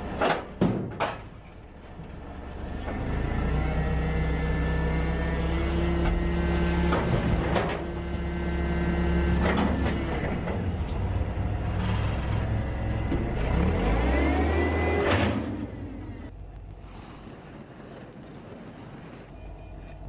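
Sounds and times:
forklift engine whine and drone: 1.4 - 20.0.

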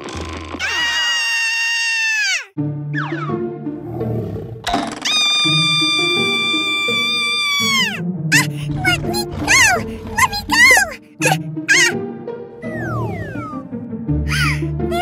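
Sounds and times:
girl screaming: 0.6 - 2.5, 5.1 - 12.0
squeaky cries: 0.6 - 2.5, 5.0 - 12.0
children's background music: 2.5 - 15.0.

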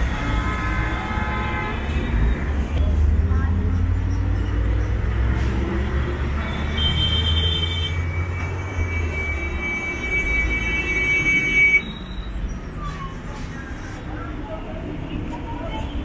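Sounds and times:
heavy vehicle engine rumble: 0.0 - 6.7
street noise: 0.0 - 16.0.

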